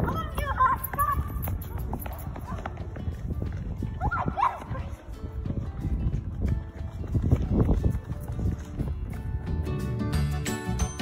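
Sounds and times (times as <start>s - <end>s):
shoes slapping on asphalt: 0.0s - 9.8s.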